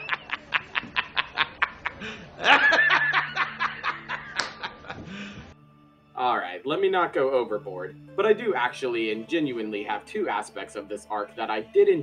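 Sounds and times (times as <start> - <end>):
man laughing hard: 0.0 - 5.4.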